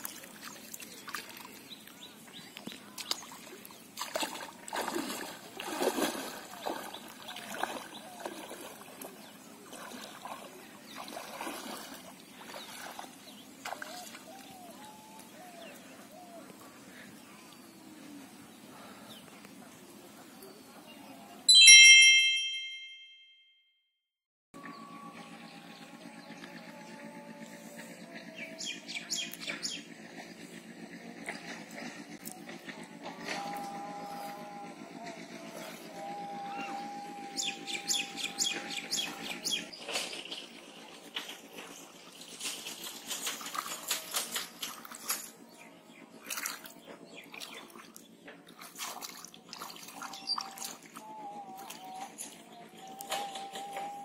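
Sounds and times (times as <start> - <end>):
bright chime ringing: 21.5 - 23.6
steady hum: 24.8 - 39.7.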